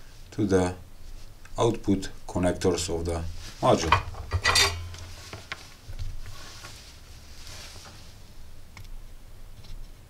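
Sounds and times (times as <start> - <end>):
scrape of tools on workbench: 3.9 - 5.5.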